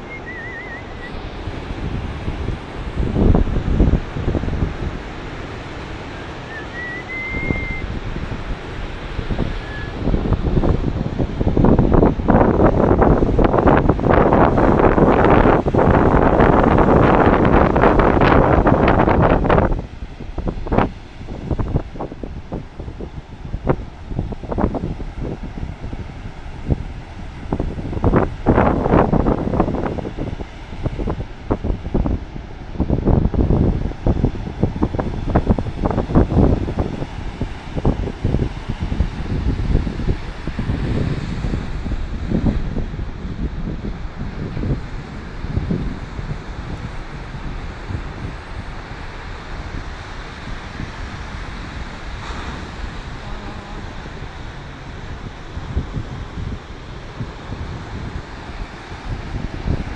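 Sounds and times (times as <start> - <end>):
ocean surf breaking: 0.0 - 59.9
wind buffeting microphone: 0.0 - 59.9.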